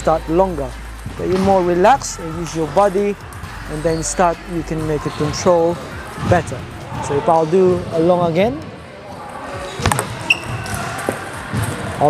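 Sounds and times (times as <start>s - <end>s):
sports hall hum: 0.0s - 12.0s.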